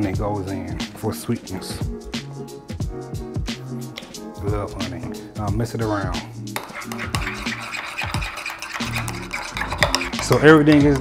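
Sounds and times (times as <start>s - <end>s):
background music with steady beat: 0.0s - 11.0s
spoon stirring sauce in glass bowl: 6.5s - 11.0s.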